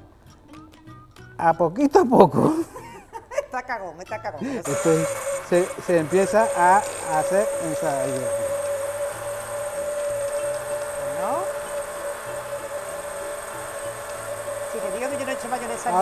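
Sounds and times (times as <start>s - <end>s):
immersion blender whining: 4.4s - 16.0s.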